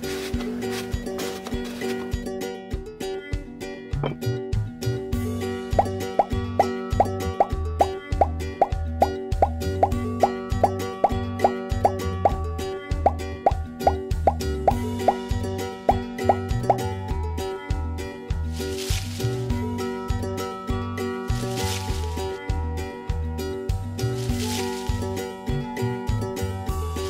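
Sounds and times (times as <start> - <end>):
upbeat bouncy music: 0.0 - 27.0.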